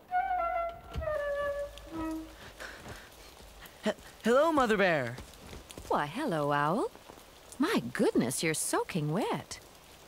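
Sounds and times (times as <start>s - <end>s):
flute notes: 0.0s - 2.6s.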